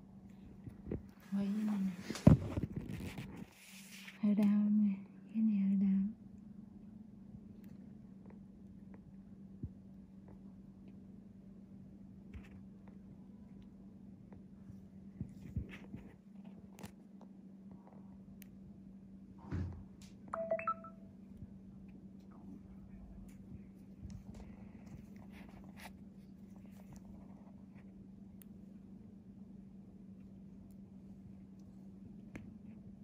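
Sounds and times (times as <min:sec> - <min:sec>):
faint steady hum: 0:00.0 - 0:33.0
electronic chime beeps: 0:20.4 - 0:21.1.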